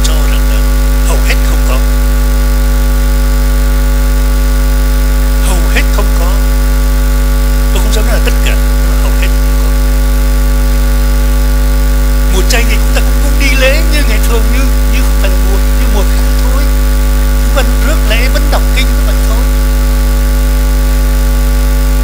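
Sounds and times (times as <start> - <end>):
electrical mains hum: 0.0 - 22.0.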